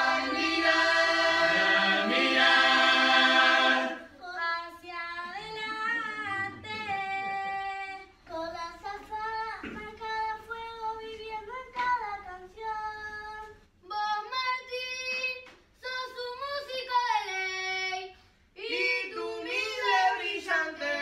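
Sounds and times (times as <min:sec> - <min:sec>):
children singing unaccompanied: 0:00.0 - 0:04.1, 0:18.6 - 0:21.0.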